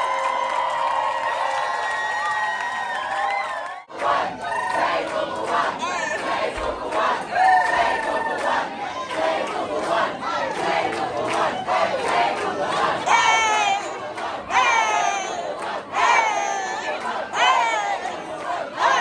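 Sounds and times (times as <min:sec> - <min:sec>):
loud individual whoops: 0:00.0 - 0:03.8
audience cheering and shouting: 0:00.0 - 0:04.9.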